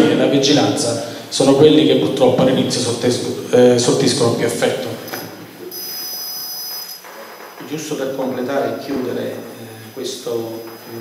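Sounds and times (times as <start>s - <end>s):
high-pitched electronic whine: 4.6s - 11.0s.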